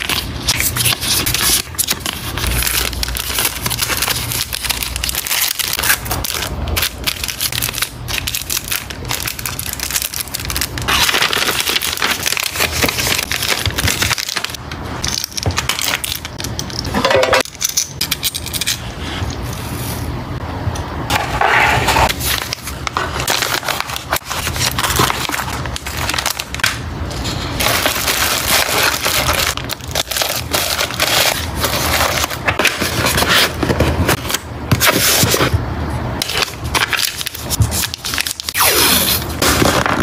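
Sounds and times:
plastic packaging crinkling: 0.0s - 17.5s, 22.0s - 35.6s, 36.2s - 40.0s.

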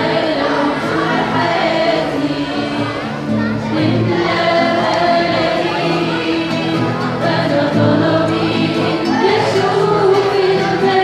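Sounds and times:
guitar: 0.0s - 11.0s
young voices singing a hymn: 0.0s - 11.0s.

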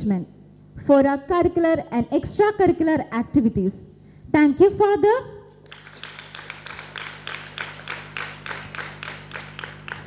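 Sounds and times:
audience applauding: 5.6s - 10.0s.

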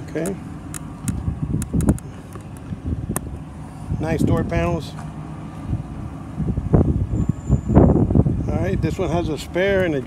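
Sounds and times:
microphone handling noise: 1.0s - 3.3s
wind noise on microphone: 1.0s - 4.8s, 5.6s - 10.0s.

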